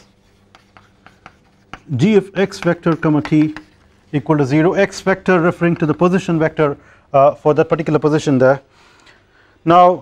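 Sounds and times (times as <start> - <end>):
chalk tapping and scratching: 0.0 - 6.8.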